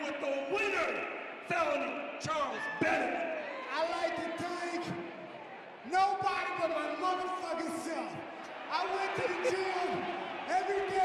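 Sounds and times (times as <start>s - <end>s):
man speaking into a microphone: 0.0s - 5.2s, 5.8s - 11.0s.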